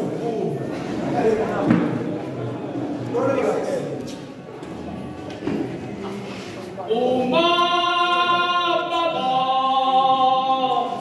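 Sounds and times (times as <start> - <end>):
male choir singing in harmony: 6.9 - 11.0.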